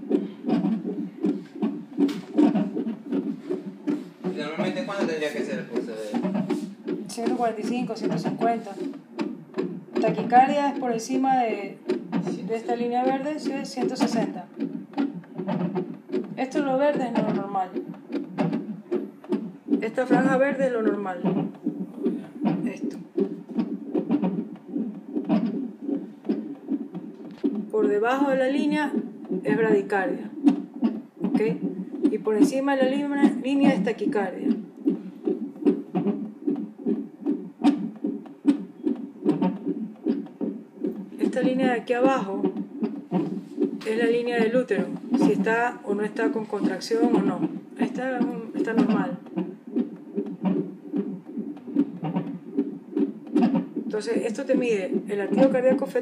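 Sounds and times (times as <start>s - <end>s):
fetal heartbeat whooshing pulse: 0.0s - 56.0s.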